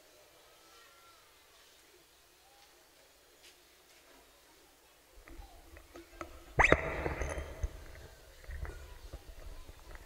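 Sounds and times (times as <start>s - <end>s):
microphone feedback squeal: 6.6s - 7.5s.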